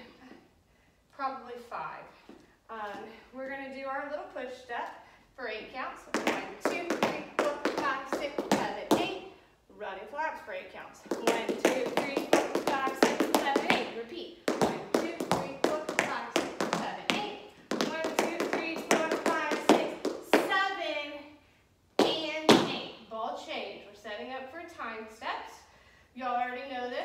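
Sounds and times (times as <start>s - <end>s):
woman speaking: 1.2s - 21.3s, 22.1s - 27.0s
tap shoes on hard floor: 6.1s - 9.1s, 11.0s - 20.6s.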